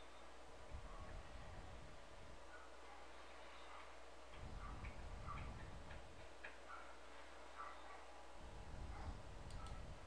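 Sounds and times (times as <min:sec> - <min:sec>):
soft irregular ticks: 0:03.7 - 0:07.8, 0:09.4 - 0:09.8.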